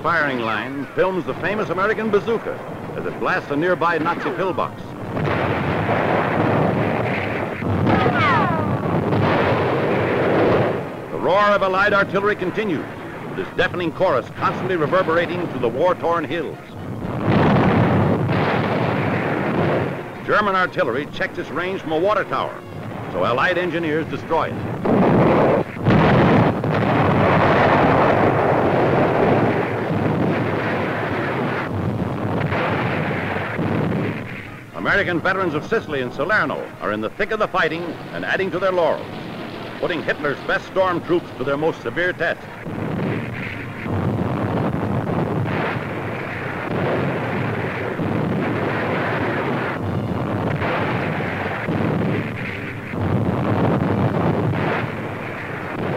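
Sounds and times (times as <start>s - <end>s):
artillery fire and explosions: 0.0s - 55.9s
long rumble of blast: 0.0s - 55.9s.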